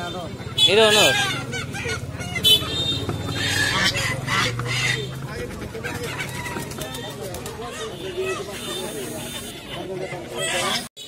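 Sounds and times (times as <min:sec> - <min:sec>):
crowd chatter: 0:00.0 - 0:11.0
pigeons cooing: 0:00.9 - 0:09.0.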